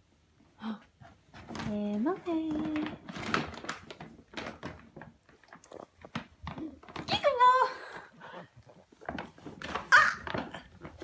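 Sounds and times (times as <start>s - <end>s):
plastic bag crinkling: 1.4s - 7.9s, 8.7s - 11.0s.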